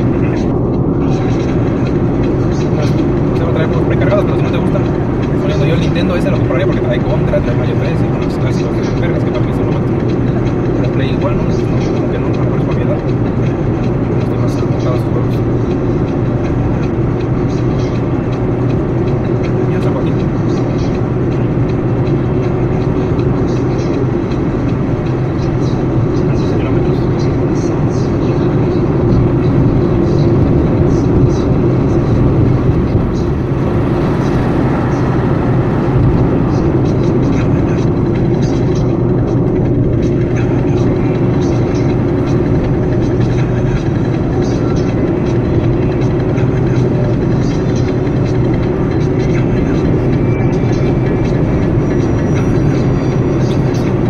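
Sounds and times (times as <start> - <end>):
car road and engine noise: 0.0 - 54.0
coach bus passing: 0.0 - 54.0.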